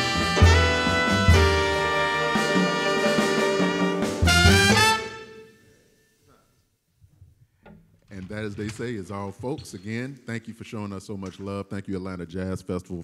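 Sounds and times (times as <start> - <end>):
jazz band playing: 0.0 - 5.5.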